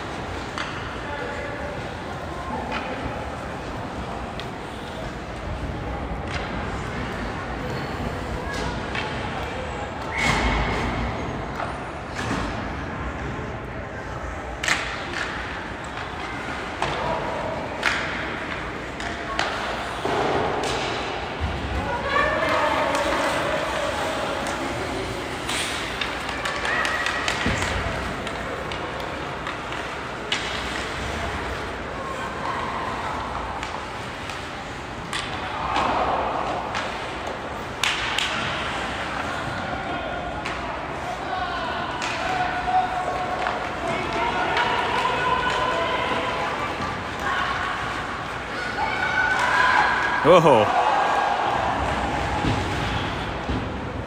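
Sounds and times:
hockey sticks and puck knocking: 14.6 - 21.5, 22.4 - 31.2, 33.2 - 39.4, 42.0 - 47.3.

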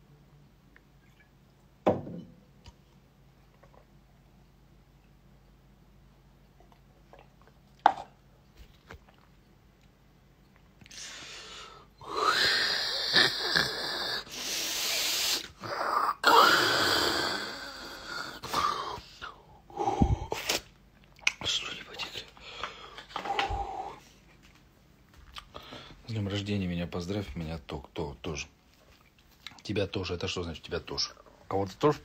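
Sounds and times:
quiet breaths: 10.8 - 12.9, 21.5 - 24.6, 25.4 - 26.3
man exhaling and crying out: 12.0 - 19.0.

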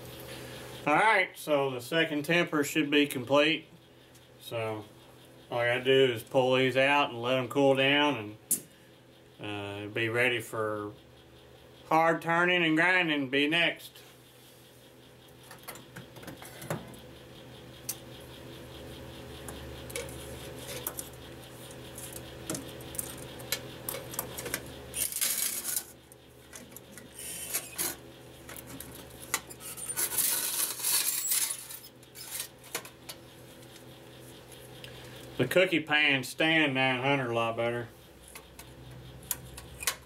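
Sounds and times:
steady electric hum: 0.0 - 40.0.

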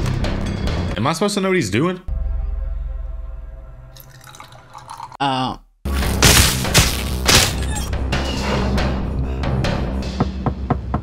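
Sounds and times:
dark film score bass drone: 2.1 - 4.0.

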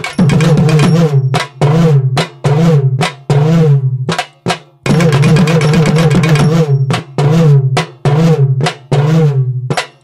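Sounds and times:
drum with bending pitch: 0.0 - 10.0.

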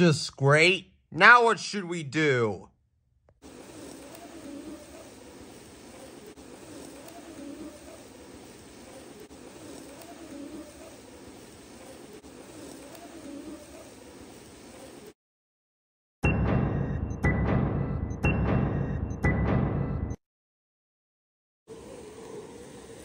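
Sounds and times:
steady background hiss: 3.4 - 15.2, 21.7 - 23.0
bird cooing: 3.6 - 15.0, 21.7 - 23.0.

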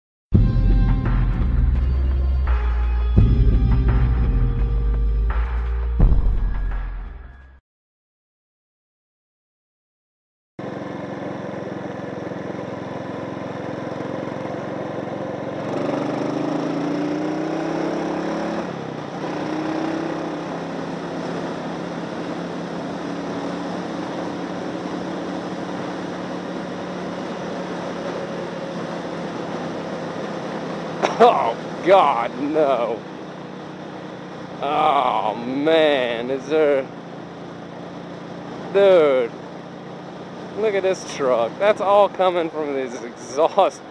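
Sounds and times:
motorcycle engine accelerating: 10.6 - 43.9.

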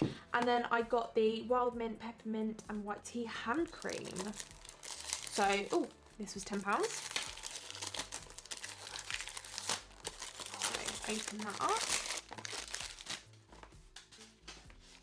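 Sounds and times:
cellophane crinkling: 3.6 - 13.7.

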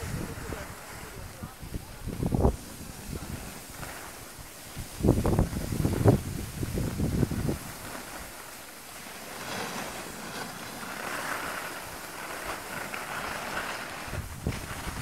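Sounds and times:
wind buffeting microphone: 0.0 - 8.6, 9.2 - 15.0
snowboard sliding over snow: 0.0 - 15.0.

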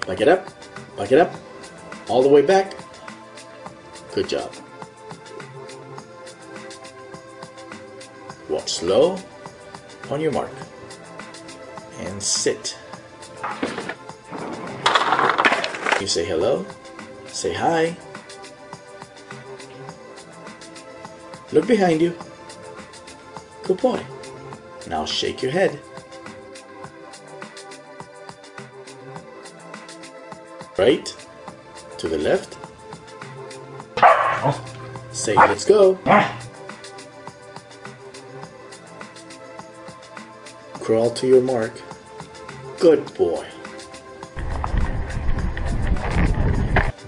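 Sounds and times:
background music: 0.0 - 47.0
skateboard wheels rolling on ramp: 13.8 - 15.9, 44.4 - 46.9
dog barking: 34.0 - 34.7, 35.4 - 36.5
person speaking a command: 35.2 - 36.4.

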